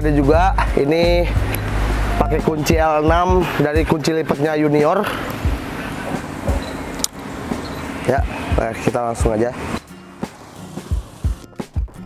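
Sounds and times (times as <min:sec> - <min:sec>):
road traffic rumble: 0:00.0 - 0:11.7.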